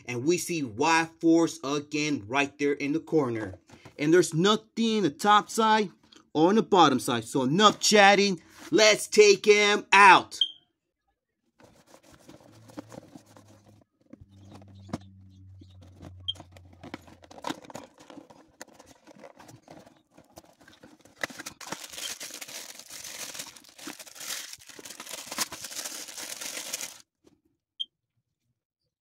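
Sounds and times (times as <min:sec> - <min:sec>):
cardboard flap scraping: 0:11.6 - 0:15.0, 0:15.8 - 0:22.4
packaging crinkling and tearing: 0:15.8 - 0:27.1.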